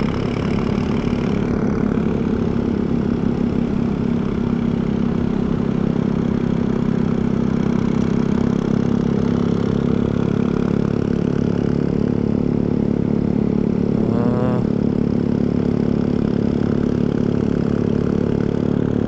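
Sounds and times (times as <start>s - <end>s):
motorcycle engine cruising: 0.0s - 19.0s
road and wind noise: 0.0s - 19.0s.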